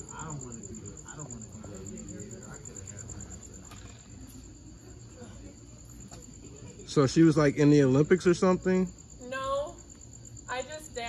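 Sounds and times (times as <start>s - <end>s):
crickets chirping: 0.0s - 11.0s
distant voices murmuring: 0.0s - 11.0s.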